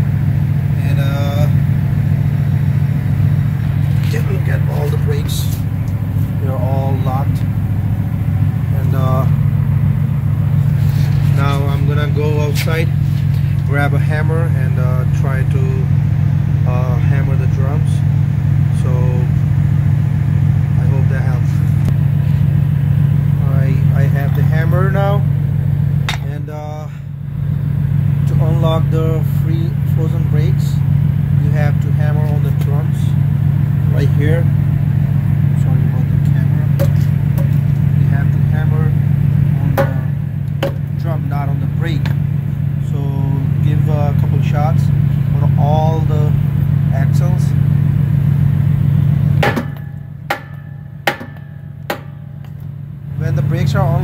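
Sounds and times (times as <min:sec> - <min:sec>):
diesel truck engine idling: 0:00.0 - 0:54.0
sharp knocks: 0:39.6 - 0:40.9, 0:49.4 - 0:52.6.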